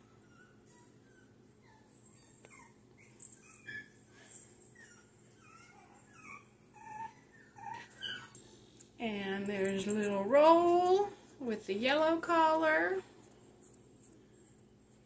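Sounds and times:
puppies whining and squeaking: 0.0s - 8.9s.

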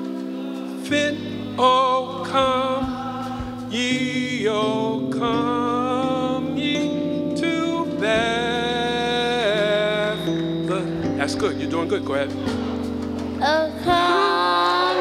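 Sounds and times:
person singing with vibrato: 0.0s - 11.3s, 13.3s - 15.0s
sustained keyboard chords: 0.0s - 15.0s.

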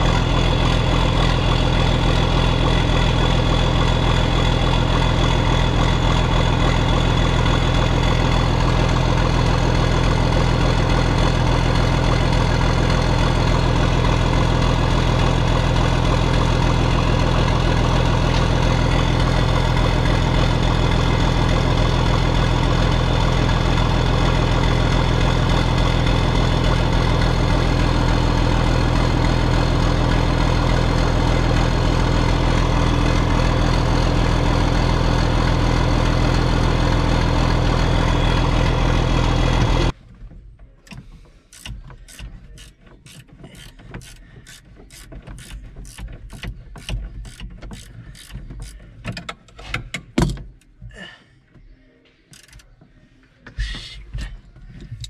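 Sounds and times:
tractor diesel engine idling: 0.0s - 49.0s.

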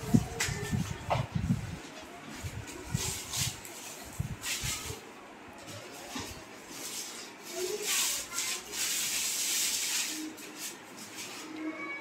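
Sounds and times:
plastic shrink wrap rustling: 0.0s - 11.9s.

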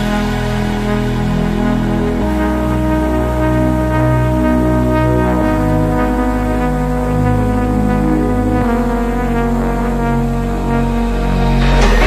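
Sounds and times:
dance music with bass: 0.0s - 12.0s.

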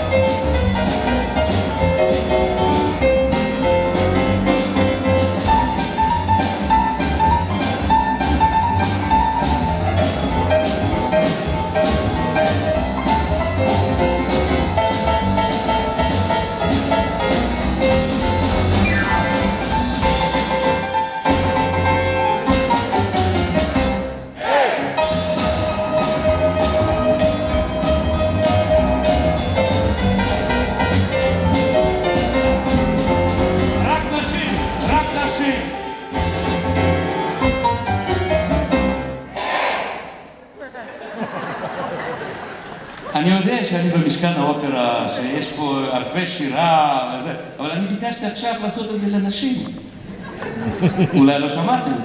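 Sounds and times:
boogie-woogie piano bass and drums: 0.0s - 24.3s, 25.0s - 39.2s.

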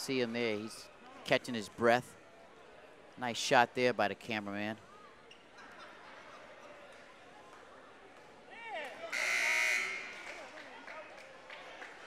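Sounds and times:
gymnasium buzzer: 9.1s - 10.4s.

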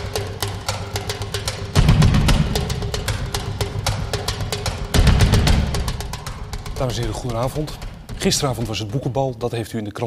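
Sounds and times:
crisp percussive ticks: 0.0s - 9.3s
drum and bass figure: 0.0s - 9.5s.

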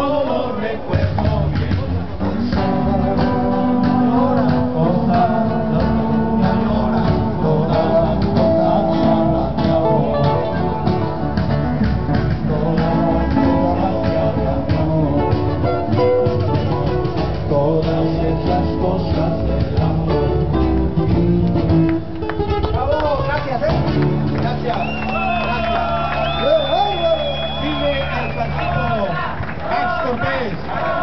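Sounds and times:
men singing together: 0.0s - 11.5s, 12.1s - 21.9s, 30.2s - 31.0s
acoustic guitar: 0.0s - 29.6s.

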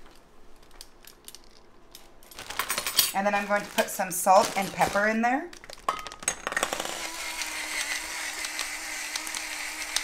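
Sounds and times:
plastic bag crinkling: 0.0s - 6.2s.

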